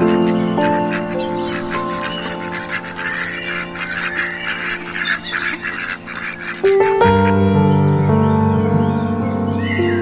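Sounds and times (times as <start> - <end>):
flock of birds calling: 0.0 - 7.4
soft sustained background music: 0.0 - 10.0.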